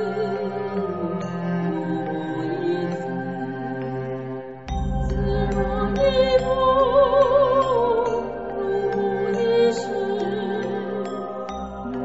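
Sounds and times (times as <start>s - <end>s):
devotional chant singing: 0.0s - 12.0s
soft sustained instrumental accompaniment: 0.0s - 12.0s.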